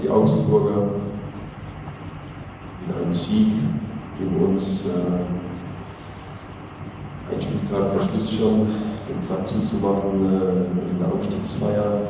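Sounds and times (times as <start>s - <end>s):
low room hum: 0.0s - 12.0s
man speaking: 7.3s - 12.0s.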